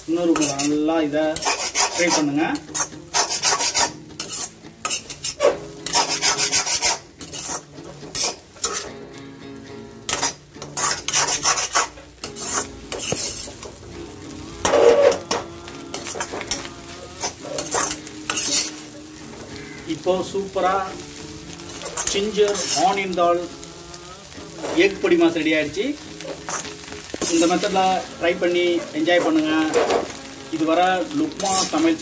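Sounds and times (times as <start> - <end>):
light frying sizzle: 0.0 - 32.0
steel spatula scraping a pan: 0.1 - 9.0, 10.1 - 13.8, 14.6 - 23.7, 24.3 - 32.0.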